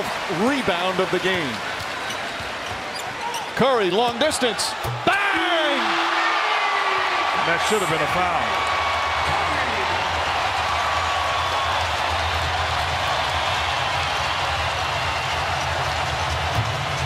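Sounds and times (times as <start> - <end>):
crowd cheering and applauding: 0.0 - 2.9, 4.5 - 17.0.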